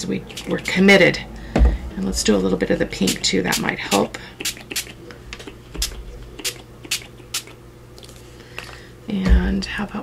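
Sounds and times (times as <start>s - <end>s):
spray bottle spritzing bursts: 4.4s - 4.9s.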